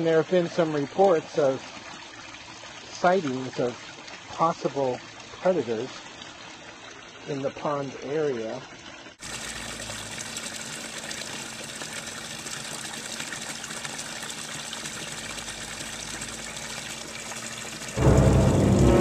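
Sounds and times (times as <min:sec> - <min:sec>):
running water rushing: 0:00.0 - 0:19.0
loud ominous music: 0:18.0 - 0:19.0.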